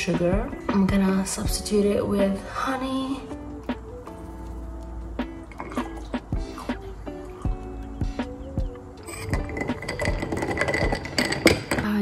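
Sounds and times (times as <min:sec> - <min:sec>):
faint background music with beat: 0:00.0 - 0:12.0
ice clinking and crackling: 0:05.5 - 0:06.2, 0:09.0 - 0:12.0.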